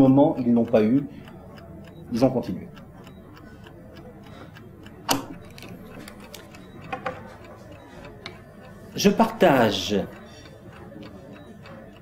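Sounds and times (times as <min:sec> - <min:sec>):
chess clock ticking: 0:00.0 - 0:12.0.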